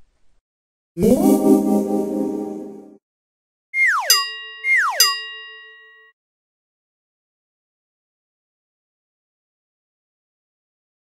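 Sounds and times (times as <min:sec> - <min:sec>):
bright bell-like ding: 0:04.1 - 0:06.2.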